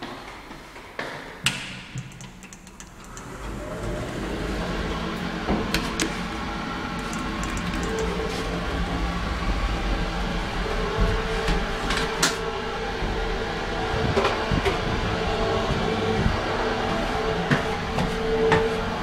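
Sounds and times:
elevator clicks: 0:01.5 - 0:03.9
elevator rumble and hum: 0:02.1 - 0:19.0.

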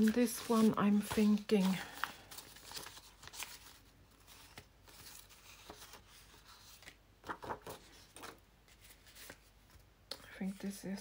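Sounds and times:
paper and card rustling: 0:00.0 - 0:11.0.

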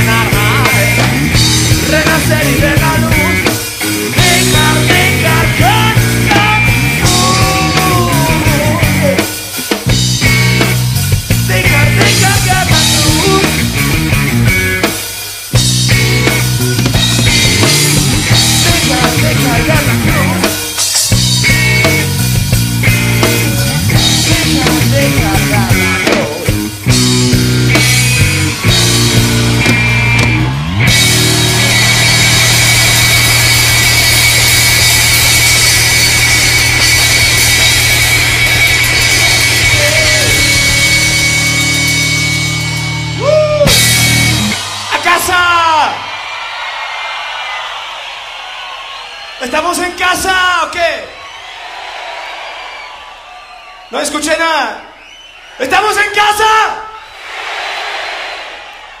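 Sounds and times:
distorted live rock band: 0:00.0 - 0:51.2
audience cheering: 0:00.1 - 0:59.0
high whistling tone: 0:55.0 - 0:55.6.

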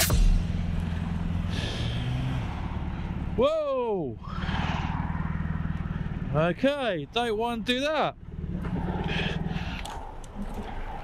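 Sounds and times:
motorcycle engine idling: 0:00.0 - 0:04.4.

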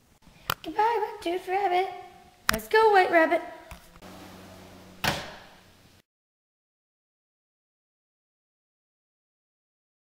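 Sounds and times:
low steady hum: 0:00.0 - 0:06.0
door shutting thump: 0:05.0 - 0:05.6.

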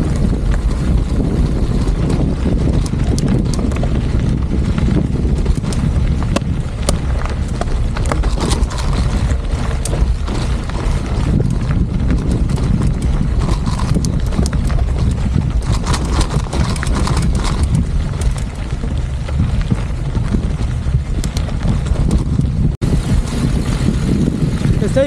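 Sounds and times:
bike tyres crunching on gravel: 0:00.0 - 0:25.0
heavy low rumble: 0:00.0 - 0:25.0.

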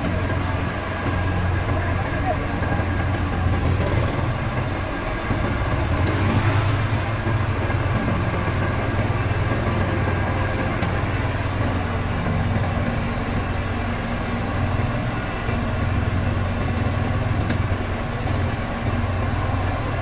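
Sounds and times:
diesel engine running: 0:00.0 - 0:20.0.

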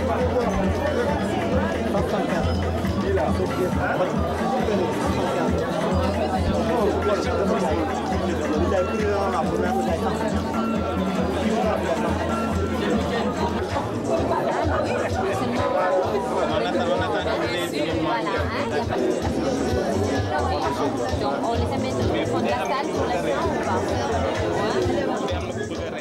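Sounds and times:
background music with bass line: 0:00.0 - 0:26.0
many people chatting: 0:00.0 - 0:26.0.

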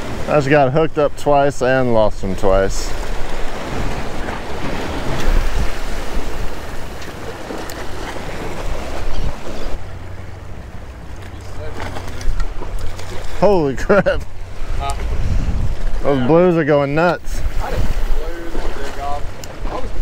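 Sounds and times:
waves splashing against rocks: 0:00.0 - 0:00.8, 0:02.1 - 0:20.0
wind buffeting microphone: 0:02.2 - 0:10.6, 0:11.6 - 0:20.0.

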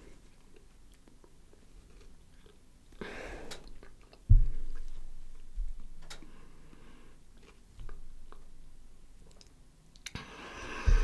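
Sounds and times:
person chewing: 0:00.3 - 0:03.0, 0:03.6 - 0:05.1, 0:07.3 - 0:08.6
soft low thump: 0:04.3 - 0:05.0.

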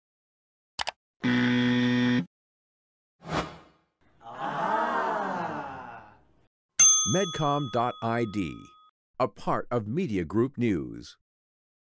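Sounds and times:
electronic buzzer: 0:01.2 - 0:02.3.

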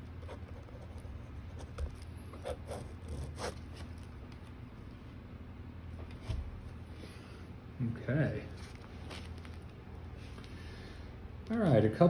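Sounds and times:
low room hum: 0:00.0 - 0:12.0
pen writing on paper: 0:00.2 - 0:03.6.

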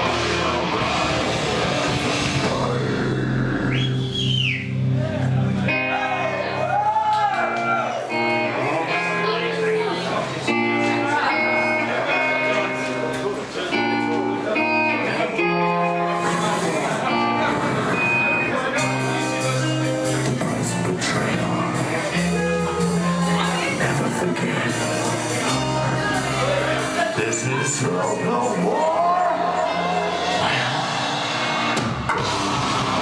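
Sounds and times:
electric guitar chords: 0:00.0 - 0:33.0
live rock band playing: 0:00.0 - 0:33.0
high whistle: 0:03.6 - 0:04.8.

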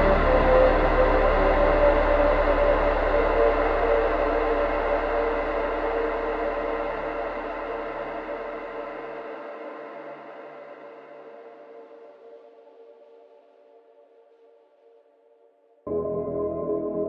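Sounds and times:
deep bass: 0:00.0 - 0:08.7
shimmering synth pad chords: 0:00.0 - 0:09.0, 0:15.9 - 0:17.0.

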